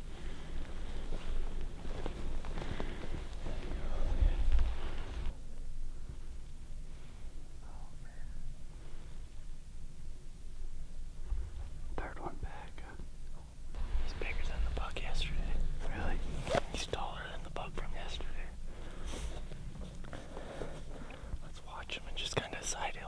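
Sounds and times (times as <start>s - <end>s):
hushed whispering voices: 3.4s - 5.6s, 7.5s - 8.6s, 11.9s - 13.1s, 14.1s - 18.6s, 21.4s - 23.0s.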